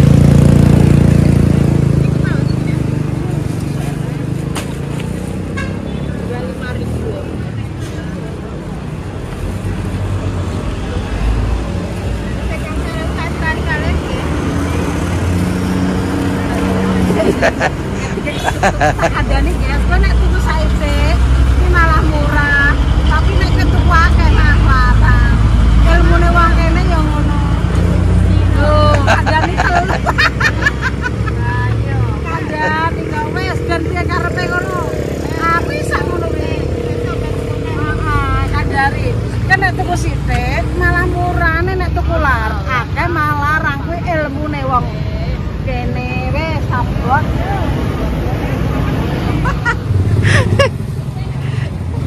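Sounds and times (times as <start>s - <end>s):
road traffic engine drone: 0.0s - 52.0s
women talking: 2.1s - 4.2s, 6.2s - 7.8s, 12.2s - 14.5s, 16.3s - 52.0s.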